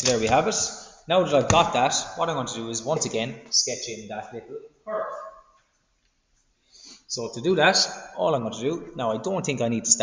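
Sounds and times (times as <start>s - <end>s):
man speaking: 0.0s - 5.3s, 7.1s - 10.0s
soft intake of breath: 6.6s - 7.1s.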